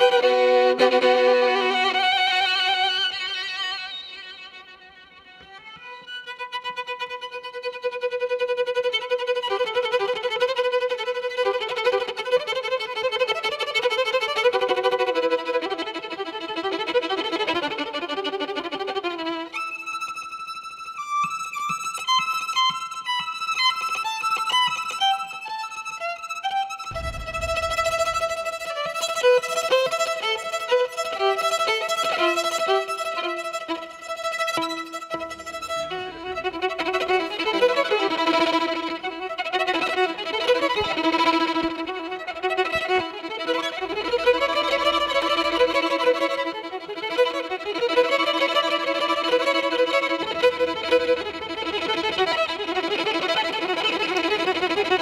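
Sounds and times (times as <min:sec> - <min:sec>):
solo violin melody: 0:00.0 - 0:55.0
low thud: 0:26.9 - 0:28.6.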